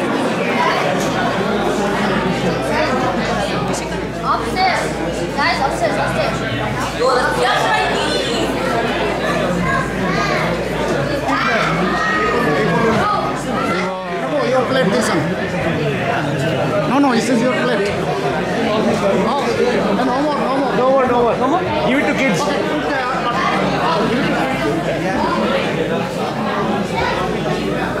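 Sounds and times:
crowd chatter in a hall: 0.0s - 28.0s.

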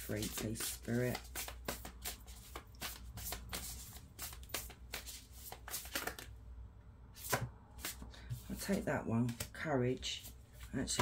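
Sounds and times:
cards being shuffled: 0.0s - 6.3s, 7.2s - 9.6s.

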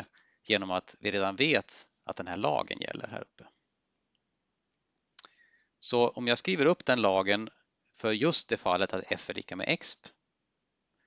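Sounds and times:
man speaking: 0.0s - 3.4s, 5.8s - 10.1s
faint breath: 5.2s - 5.8s.

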